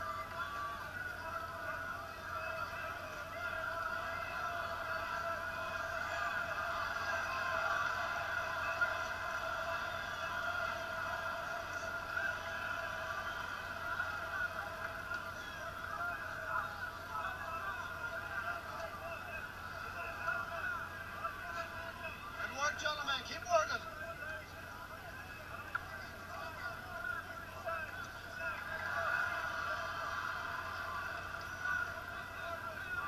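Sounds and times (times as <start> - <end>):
crowd shouting and cheering: 0.0 - 33.0.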